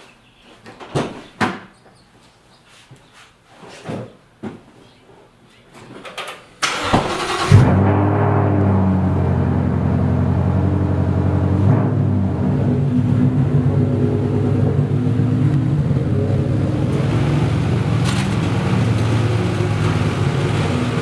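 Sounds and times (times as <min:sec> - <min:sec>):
engine starter cranking: 0:06.6 - 0:07.8
car engine idling: 0:06.7 - 0:21.0.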